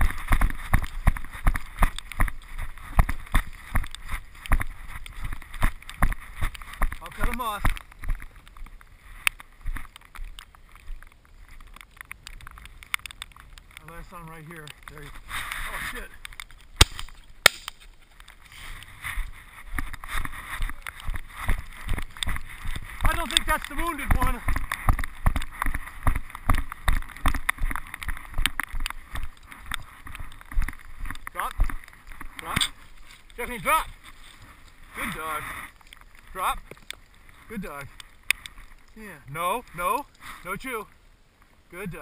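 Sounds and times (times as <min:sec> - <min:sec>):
running footsteps in wet grass: 0:00.0 - 0:41.0
rustling: 0:00.0 - 0:41.6
shotgun shots: 0:16.8 - 0:17.7.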